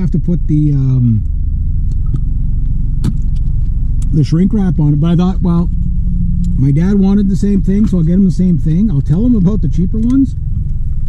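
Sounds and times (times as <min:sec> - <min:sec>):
car cabin low rumble: 0:00.0 - 0:11.0.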